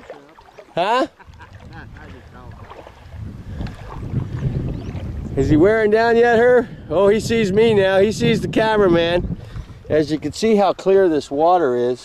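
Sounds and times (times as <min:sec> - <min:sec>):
wind buffeting microphone: 0:01.2 - 0:11.5.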